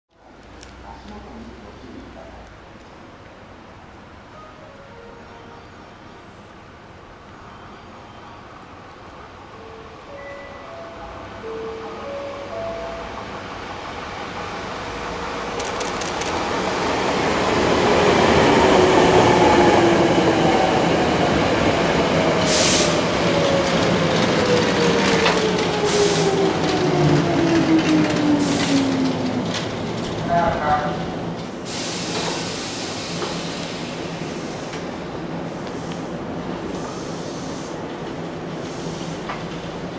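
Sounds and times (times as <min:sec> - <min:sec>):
train wheels rumbling on rails: 0:13.2 - 0:39.9
short air hisses: 0:22.5 - 0:23.0, 0:31.7 - 0:34.7.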